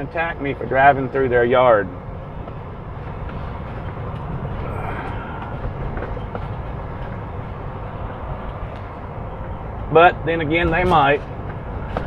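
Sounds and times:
truck diesel engine rumble: 0.0s - 12.0s.

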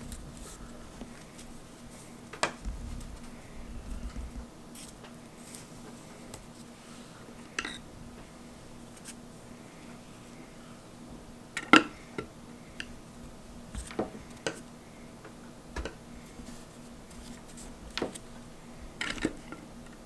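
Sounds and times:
low handling rumble: 2.6s - 4.5s.

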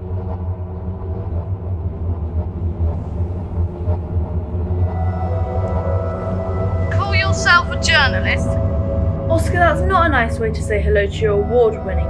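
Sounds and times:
dark ambient film score: 0.0s - 12.0s.

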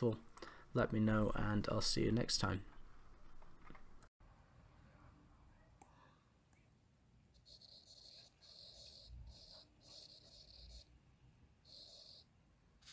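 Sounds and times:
stylus scratching on tablet: 7.3s - 11.0s, 11.6s - 12.9s.

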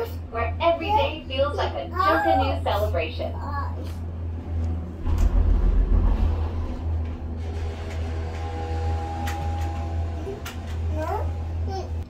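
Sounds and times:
cable car cabin rumble: 0.0s - 12.0s
low buffeting: 0.0s - 12.0s
steady humming tone: 0.0s - 12.0s.

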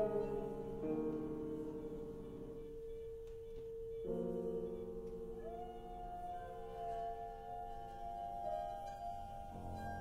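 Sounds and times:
held pure musical tone: 0.0s - 10.0s.

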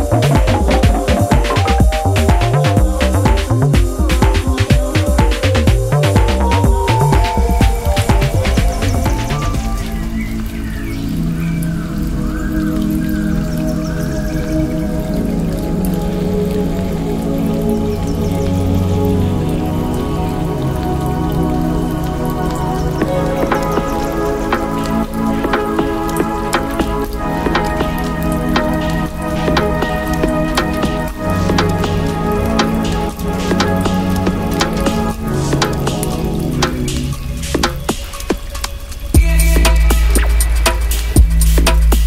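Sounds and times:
electronic music with bass: 0.0s - 10.2s, 22.6s - 38.2s, 39.2s - 42.0s
dense patter of short clicks: 22.5s - 42.0s.

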